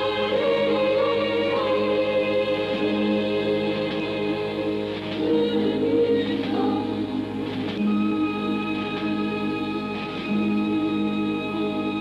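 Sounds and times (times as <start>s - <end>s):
choir singing sustained notes: 0.0s - 12.0s
soundtrack music: 0.0s - 12.0s.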